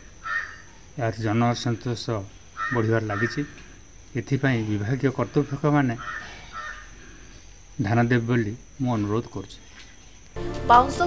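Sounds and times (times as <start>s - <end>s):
faint harsh bird calls: 0.0s - 7.8s.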